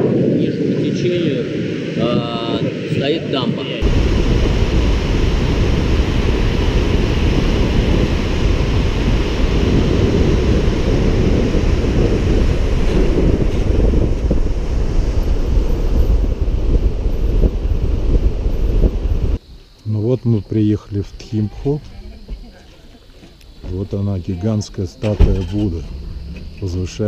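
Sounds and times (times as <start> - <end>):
wind buffeting microphone: 0.0 - 19.4, 20.4 - 27.0.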